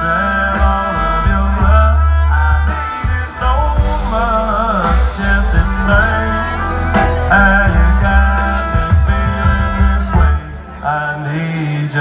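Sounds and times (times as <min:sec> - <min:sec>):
live country band playing: 0:00.0 - 0:12.0.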